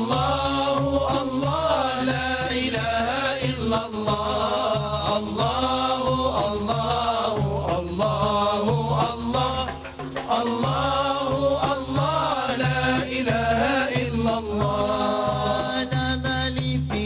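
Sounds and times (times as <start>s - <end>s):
frame drums beating: 0.0s - 17.0s
men chanting in unison: 0.0s - 17.0s.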